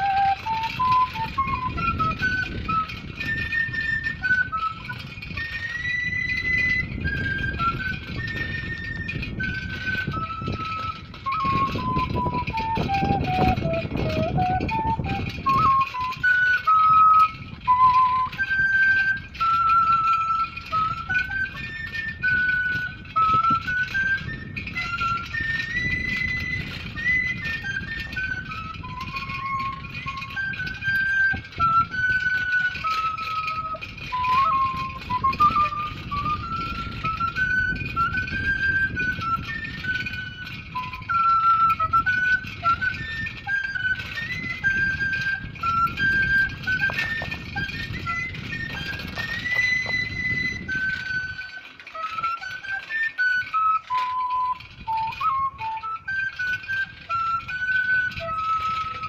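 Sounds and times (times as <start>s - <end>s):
end-blown flute melody: 0.0s - 59.0s.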